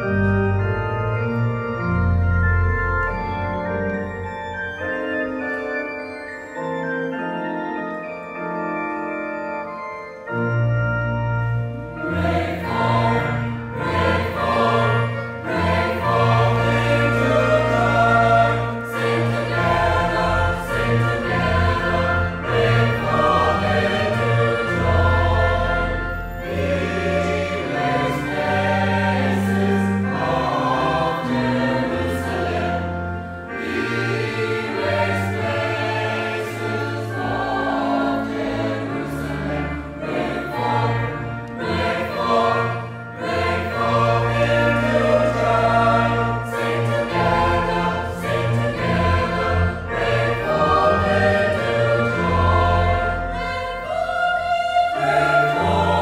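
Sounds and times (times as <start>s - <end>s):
mixed choir singing: 12.0s - 56.0s.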